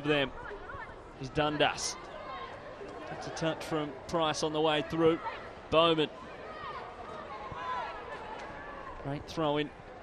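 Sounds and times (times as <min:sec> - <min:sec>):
low crowd murmur: 0:00.0 - 0:10.0.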